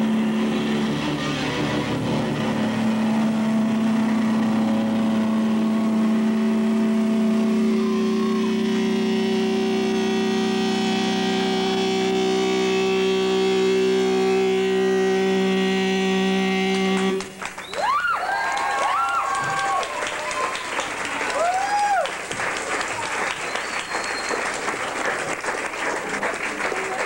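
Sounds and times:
electric guitar drone: 0.0s - 17.6s.

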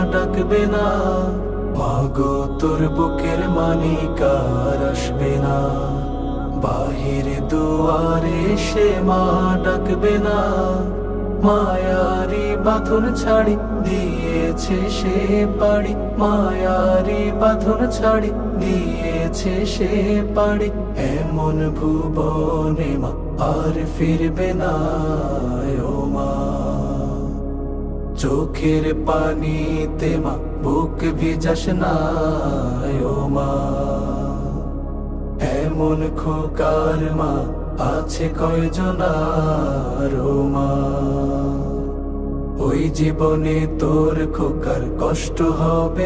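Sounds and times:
person singing mournful song: 0.0s - 27.4s, 28.2s - 34.8s, 35.4s - 42.0s, 42.6s - 46.0s
low drone: 0.0s - 46.0s.

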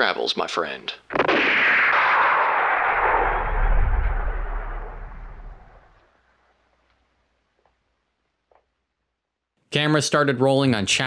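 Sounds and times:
cinematic boom with echoing tail: 2.0s - 6.0s
deep rumble: 2.9s - 6.0s.

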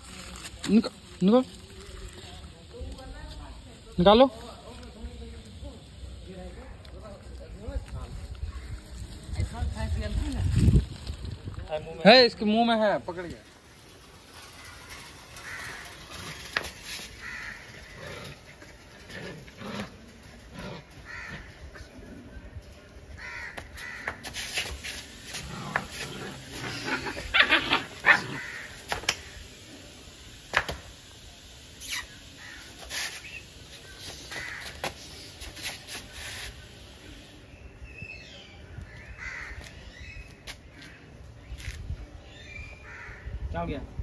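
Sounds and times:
crow cawing: 15.4s - 16.3s, 17.2s - 18.1s, 21.0s - 21.6s, 23.2s - 24.2s, 28.3s - 28.8s, 34.3s - 34.8s, 39.2s - 39.6s, 42.8s - 43.3s.

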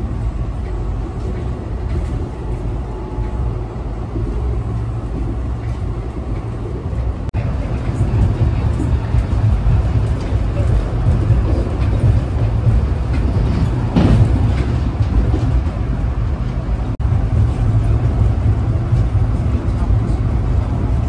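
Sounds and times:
train rumble from inside: 0.0s - 21.0s.

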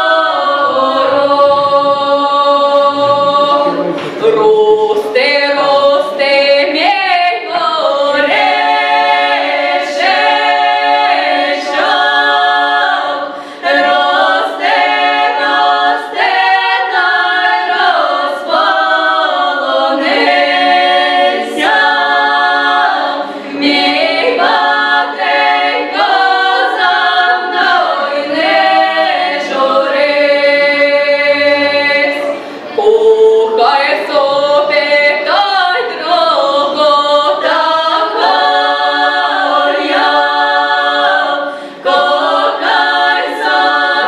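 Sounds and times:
women singing folk song unaccompanied: 0.0s - 44.0s.

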